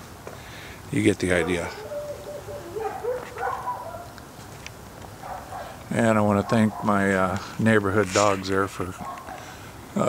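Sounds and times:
dogs barking: 1.2 - 4.2, 5.1 - 7.6, 8.9 - 9.6.

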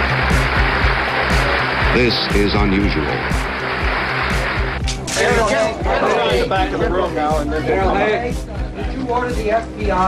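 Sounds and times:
crowd applauding: 0.0 - 6.7
background music with low beat: 0.0 - 10.0.

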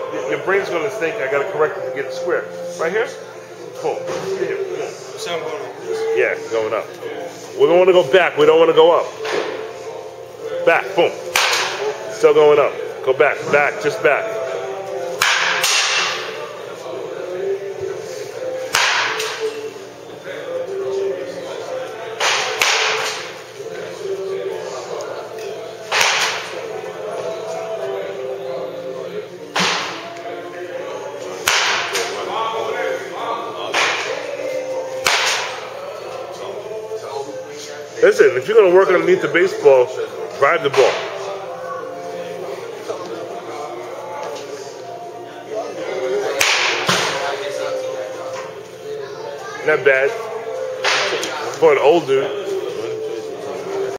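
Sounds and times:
baseball bat hitting ball: 11.4 - 11.8, 31.5 - 32.1, 35.0 - 35.6
bat hitting ball: 11.4 - 11.8.

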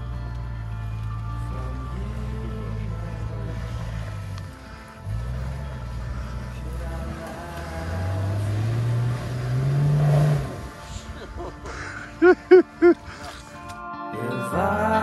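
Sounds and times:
off-road engine revving: 0.0 - 11.4
mud spraying from wheels: 0.0 - 13.2
background music: 0.0 - 15.0.

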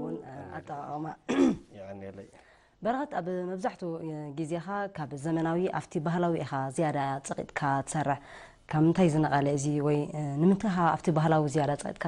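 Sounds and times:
person clearing throat: 1.3 - 1.7.

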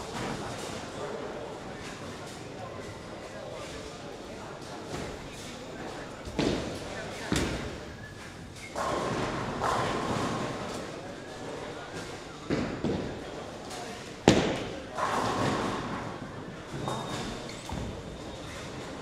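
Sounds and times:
bowling balls thudding on lanes: 8.7 - 11.0, 14.3 - 19.0.

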